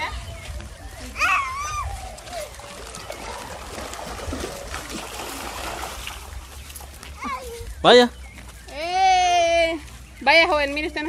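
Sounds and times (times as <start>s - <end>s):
water sloshing and splashing: 1.9s - 7.2s.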